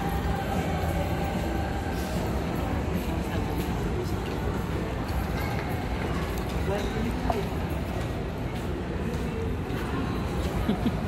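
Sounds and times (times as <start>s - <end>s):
indoor hall background rumble: 0.0s - 11.0s.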